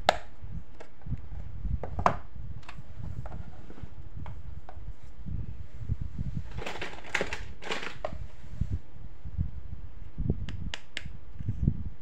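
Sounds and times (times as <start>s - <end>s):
plastic toys crinkling: 6.5s - 8.2s
sharp clicks: 10.5s - 11.1s.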